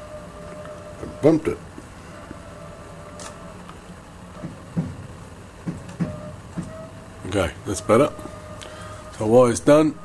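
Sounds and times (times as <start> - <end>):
milling machine humming: 0.0 - 10.0
soft knocks and clicks: 4.4 - 6.8.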